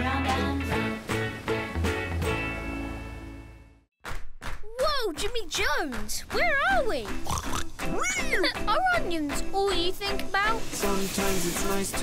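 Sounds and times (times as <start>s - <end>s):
background music with held notes: 0.0s - 3.8s, 6.2s - 12.0s
cartoon pig calls: 7.2s - 8.4s.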